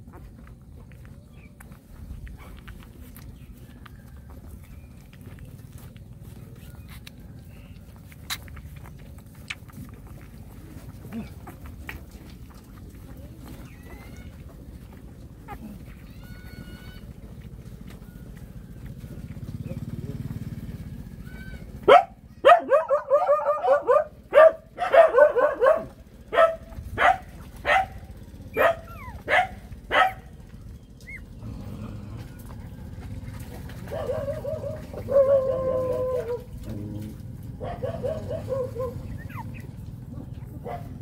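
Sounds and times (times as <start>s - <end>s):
dog barking: 21.8s - 30.4s, 33.9s - 36.5s, 37.6s - 39.6s, 40.6s - 41.0s.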